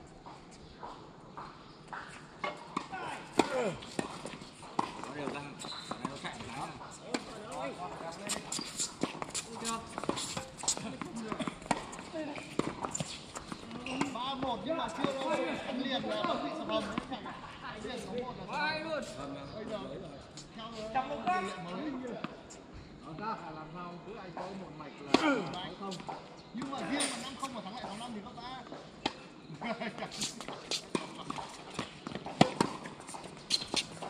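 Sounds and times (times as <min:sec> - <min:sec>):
tennis balls struck and bouncing: 0:00.8 - 0:17.1, 0:28.7 - 0:29.3, 0:30.2 - 0:34.0
players talking: 0:02.4 - 0:34.0.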